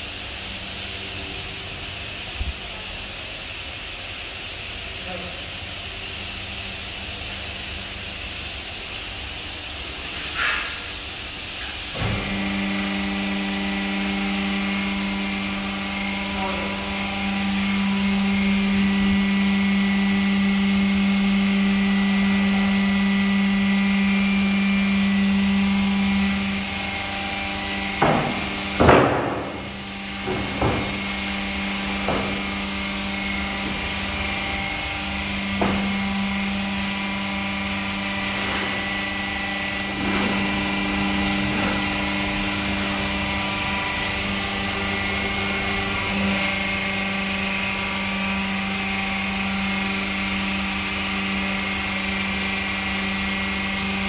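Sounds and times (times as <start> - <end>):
hydraulic pump motor humming: 0.0 - 54.0.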